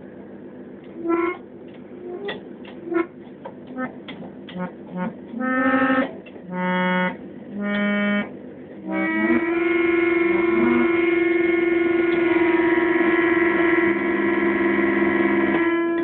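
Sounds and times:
electric keyboard organ chord: 0:02.0 - 0:16.0.

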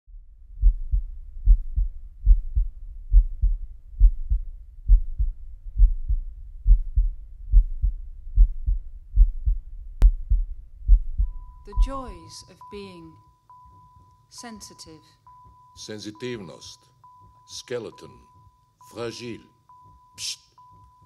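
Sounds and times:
amplified heartbeat thumps: 0:00.1 - 0:21.0
faint low hum: 0:00.1 - 0:21.0.

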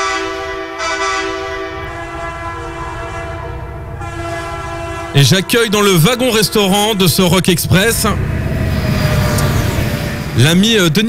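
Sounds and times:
train horn: 0:00.0 - 0:10.9
train rumbling: 0:00.0 - 0:11.0.

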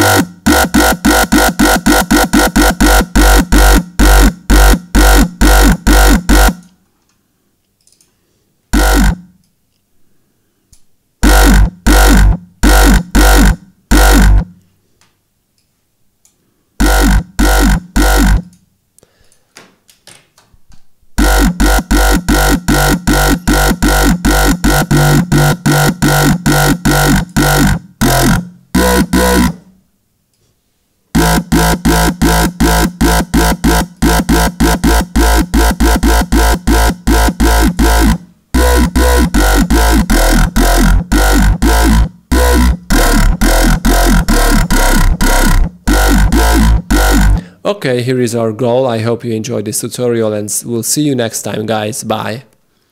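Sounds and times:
deep sub bass: 0:00.0 - 0:06.6, 0:08.7 - 0:09.2, 0:11.2 - 0:14.5, 0:16.8 - 0:18.5, 0:21.2 - 0:29.7, 0:31.2 - 0:47.4
distorted growl bass stabs: 0:00.0 - 0:06.6, 0:08.7 - 0:09.4, 0:11.2 - 0:14.6, 0:16.8 - 0:18.5, 0:21.2 - 0:29.7, 0:31.2 - 0:47.4.

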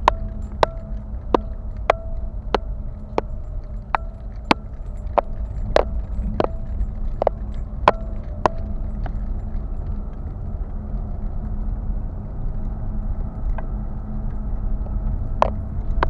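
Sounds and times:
sharp clicks and knocks: 0:00.0 - 0:10.4
car interior rumble: 0:00.0 - 0:16.0.

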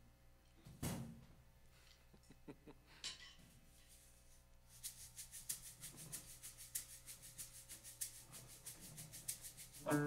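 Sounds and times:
handheld shaker rhythm: 0:03.9 - 0:10.0.

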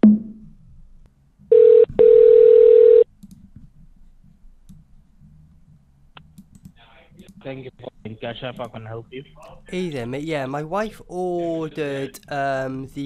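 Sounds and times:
telephone line beep and tone: 0:01.5 - 0:03.0.

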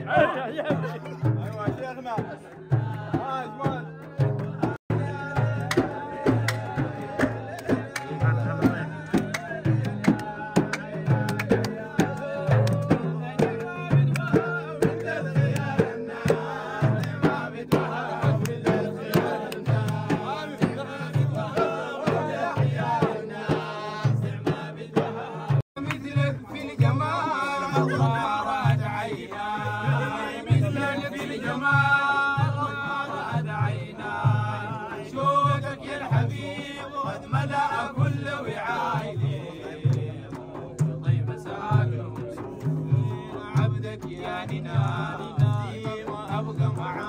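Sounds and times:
frame drums beating: 0:00.0 - 0:47.0
men singing: 0:00.0 - 0:47.0.

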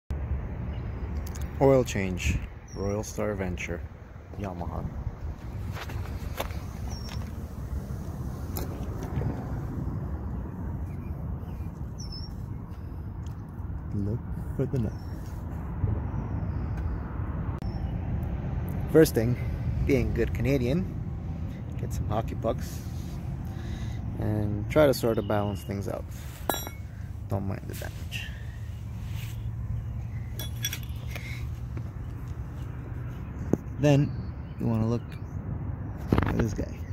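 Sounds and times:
bird chirping: 0:06.5 - 0:08.8, 0:10.3 - 0:13.4, 0:16.0 - 0:18.0, 0:28.1 - 0:35.4
metal hand tools clinking: 0:26.4 - 0:26.9, 0:30.4 - 0:31.1.

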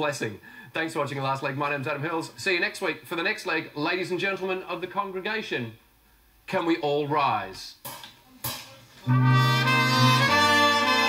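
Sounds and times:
brass band playing held chord: 0:09.0 - 0:11.0.

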